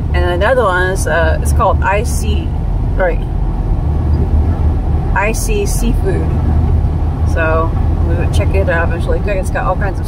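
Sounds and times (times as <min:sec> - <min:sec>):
car engine and tyres droning: 0:00.0 - 0:10.0.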